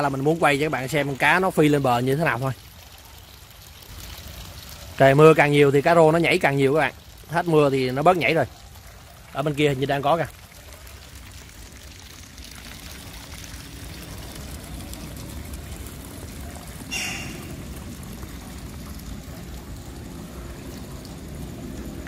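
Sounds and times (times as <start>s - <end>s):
water pouring into a pond: 0.0s - 22.0s.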